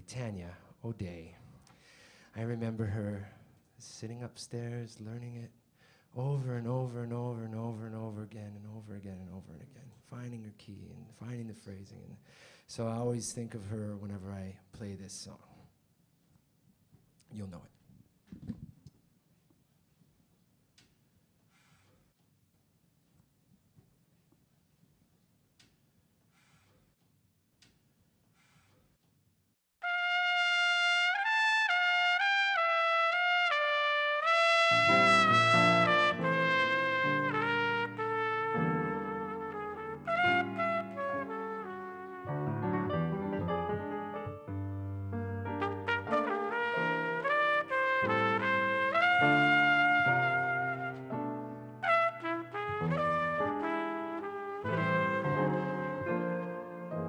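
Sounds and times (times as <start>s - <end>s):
jazz trumpet melody: 29.8s - 57.0s
piano accompaniment: 34.2s - 57.0s.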